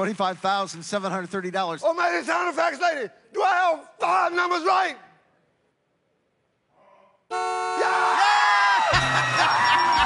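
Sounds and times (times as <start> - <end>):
crowd screaming and cheering: 7.8 - 10.0.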